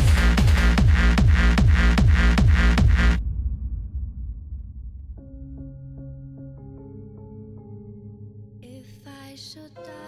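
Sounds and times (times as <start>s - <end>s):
hard-dance electronic track: 0.0s - 3.2s
low rumble: 0.0s - 6.4s.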